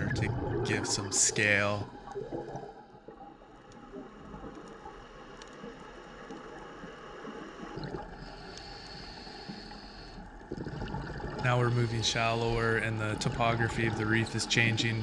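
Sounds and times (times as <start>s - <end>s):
underwater hiss and rumble: 0.0s - 15.0s.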